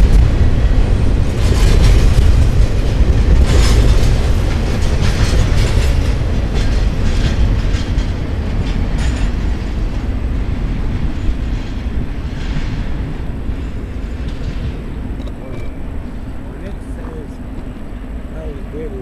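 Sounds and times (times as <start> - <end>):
train rumbling past: 0.0 - 19.0
wheels clattering on rails: 0.0 - 19.0.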